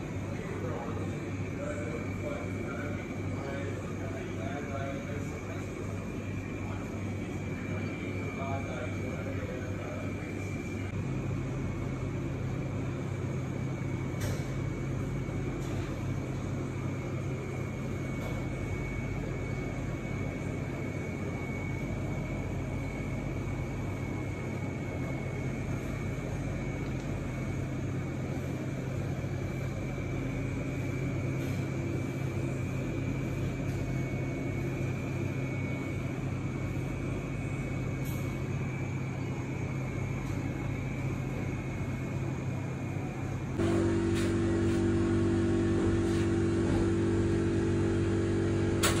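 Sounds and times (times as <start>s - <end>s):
machine hum with high whine: 0.0s - 49.0s.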